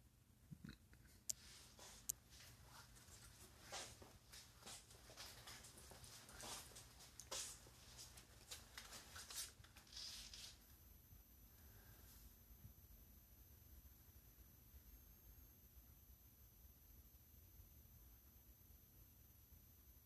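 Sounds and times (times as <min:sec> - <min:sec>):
faint high whine: 0:00.0 - 0:20.0
faint rustling and handling: 0:01.1 - 0:10.8.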